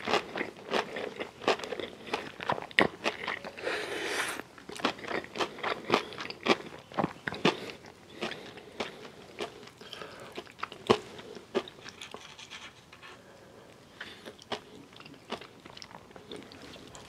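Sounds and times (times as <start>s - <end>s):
crunchy chewing: 0.0s - 12.8s, 14.0s - 17.0s.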